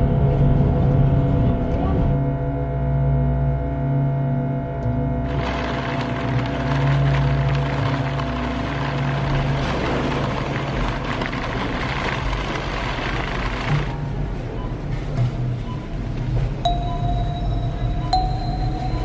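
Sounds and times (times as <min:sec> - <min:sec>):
low drone music: 0:00.0 - 0:19.0
shopping trolley wheels rattling: 0:05.3 - 0:14.2.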